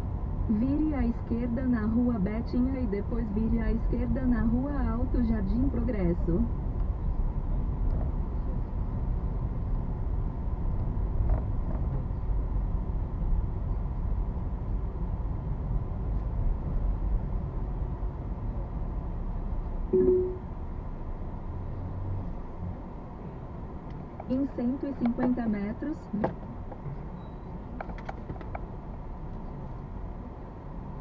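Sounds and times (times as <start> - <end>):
short single tone: 19.9 - 20.5.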